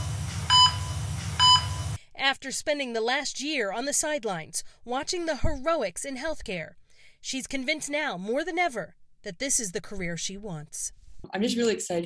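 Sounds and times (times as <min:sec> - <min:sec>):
heart monitor beeps: 0:00.5 - 0:02.0.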